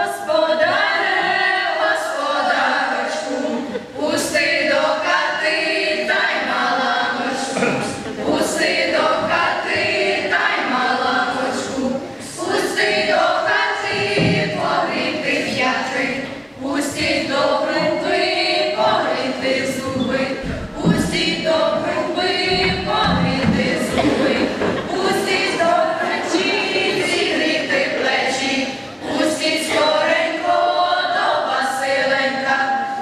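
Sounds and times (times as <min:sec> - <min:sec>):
children's choir singing a carol: 0:00.0 - 0:33.0.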